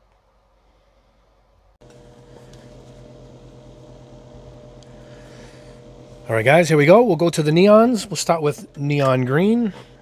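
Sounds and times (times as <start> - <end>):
fan or motor humming: 1.8 - 10.0.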